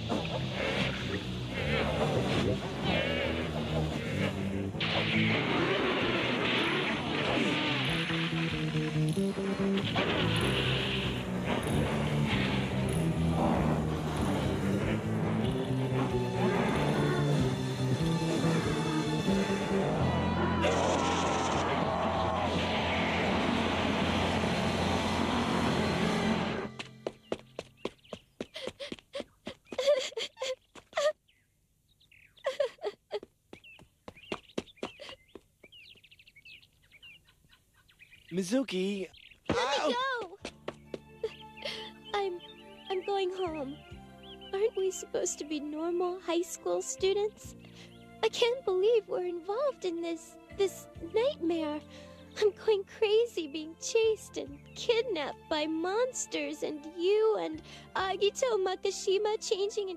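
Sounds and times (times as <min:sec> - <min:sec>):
dramatic background score: 0:00.1 - 0:26.9
woman sobbing and wailing: 0:28.6 - 0:31.2, 0:32.4 - 0:33.3, 0:41.2 - 0:42.4.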